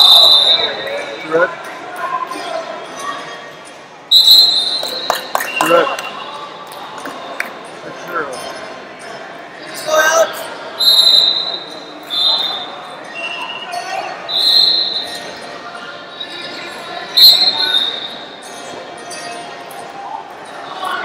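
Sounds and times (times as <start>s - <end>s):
referee whistle blasts: 0.0s - 0.9s, 4.1s - 6.2s, 10.8s - 13.6s, 14.3s - 15.2s, 17.2s - 18.2s
crowd chatter: 0.0s - 21.0s.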